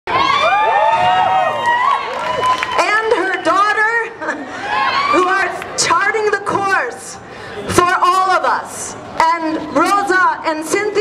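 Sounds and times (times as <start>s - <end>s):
crowd cheering and shouting: 0.1s - 5.9s.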